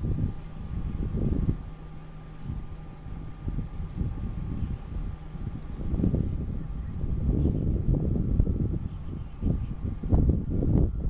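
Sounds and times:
wind buffeting microphone: 0.0s - 11.0s
faint bird chirps: 4.5s - 7.8s, 8.5s - 10.0s.

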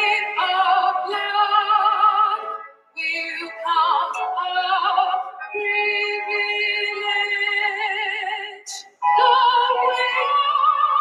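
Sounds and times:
person singing with vibrato: 0.0s - 11.0s.

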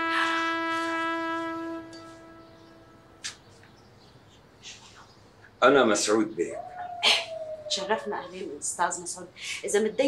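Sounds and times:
trumpet-like held note: 0.0s - 3.3s.

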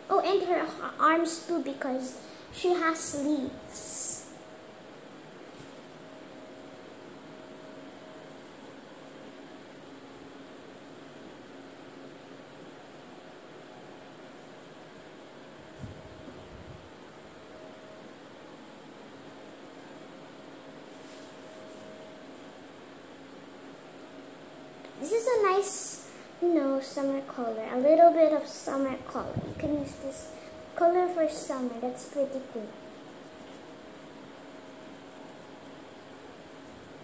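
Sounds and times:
faint hum: 0.0s - 37.0s.

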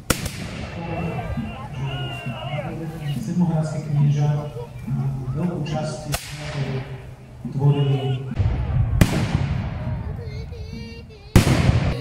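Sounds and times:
musket shot: 0.0s - 0.8s, 8.4s - 9.8s.

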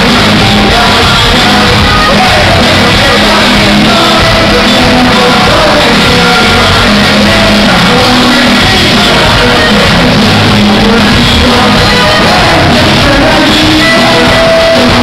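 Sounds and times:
crowd shouting along: 0.0s - 15.0s
live band music: 0.0s - 15.0s
person singing: 0.0s - 15.0s.

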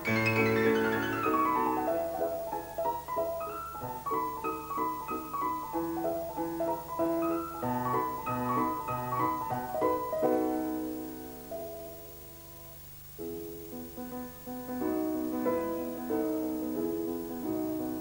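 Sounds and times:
solo grand piano: 0.0s - 18.0s.

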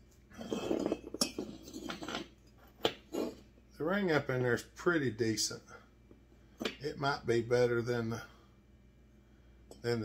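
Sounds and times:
metal clinks and scrapes: 0.3s - 3.5s.

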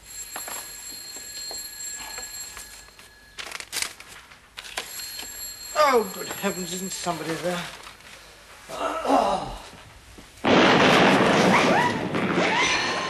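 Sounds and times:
old telephone bell ringing: 0.0s - 7.8s.

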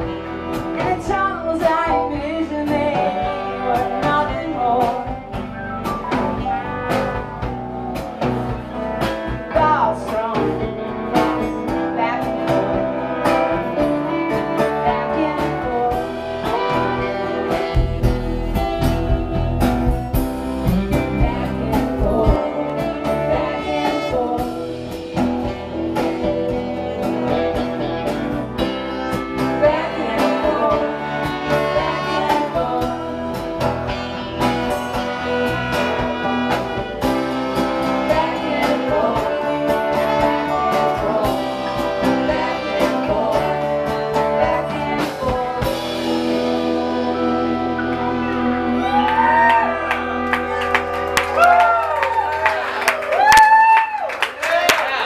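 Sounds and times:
woman singing: 0.0s - 5.4s, 9.3s - 19.4s, 20.6s - 50.6s
live rock band playing: 0.0s - 55.0s
audience clapping: 49.0s - 55.0s.

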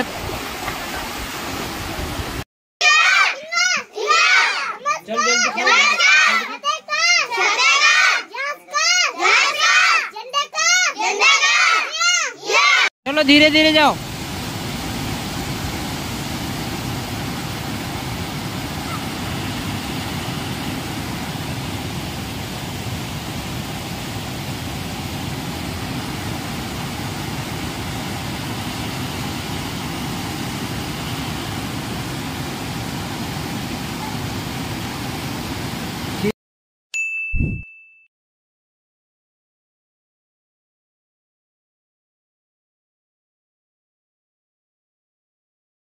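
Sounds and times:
stream rushing over rocks: 0.0s - 2.4s, 13.3s - 36.3s
short ding: 37.0s - 38.1s.

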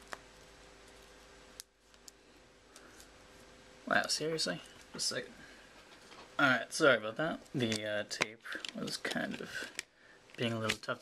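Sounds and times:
fingers picking at tape: 7.6s - 10.9s.

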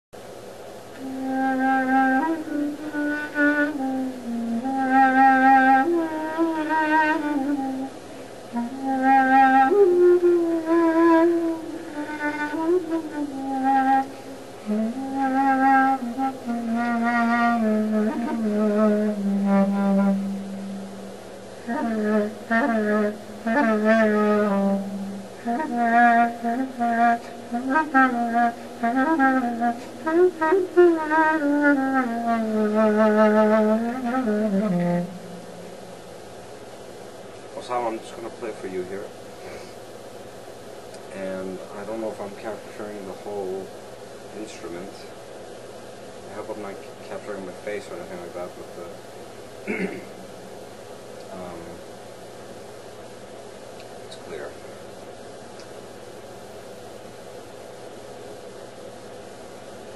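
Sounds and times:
solo clarinet folk melody: 0.9s - 35.8s.

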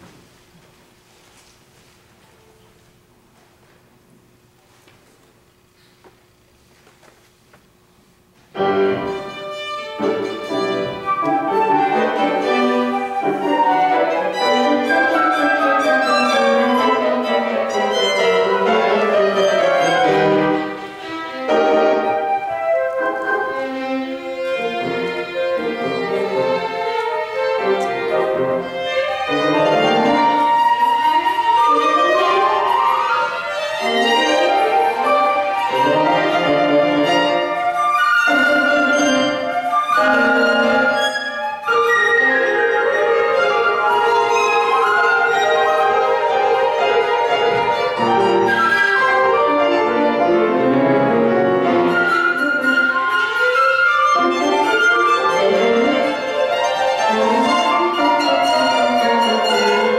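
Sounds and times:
flute violin and piano music: 8.5s - 59.9s.

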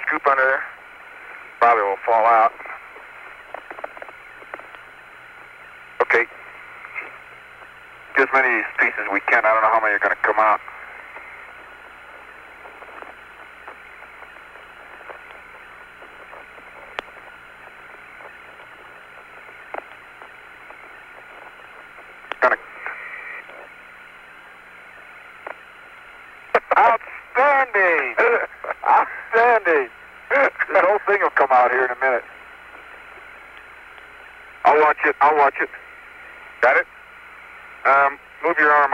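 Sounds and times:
man's voice over radio: 0.0s - 0.8s, 1.6s - 3.0s, 6.0s - 7.2s, 8.1s - 15.6s, 22.3s - 23.7s, 26.5s - 32.4s, 34.6s - 37.0s, 37.8s - 38.9s
radio hiss: 0.0s - 38.9s
faint clicks: 3.2s - 4.9s, 11.1s - 23.7s, 32.7s - 34.2s.

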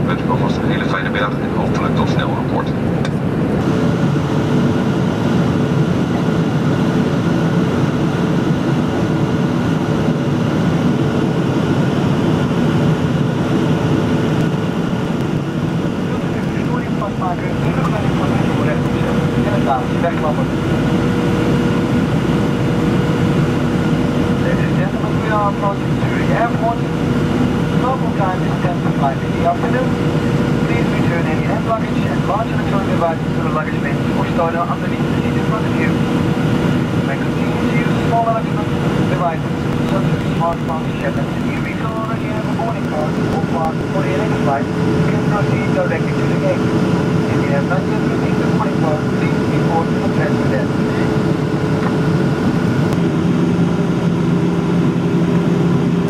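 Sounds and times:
airflow over fuselage: 0.0s - 56.0s
jet engines droning: 0.0s - 56.0s
steady cabin hum: 9.9s - 56.0s.

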